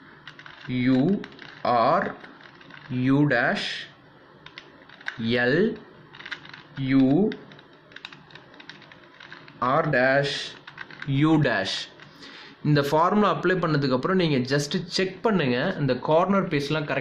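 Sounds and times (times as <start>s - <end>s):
puzzle cube clicking: 0.2s - 3.0s, 4.4s - 11.2s
person speaking: 0.5s - 4.0s, 5.0s - 7.6s, 9.4s - 17.0s.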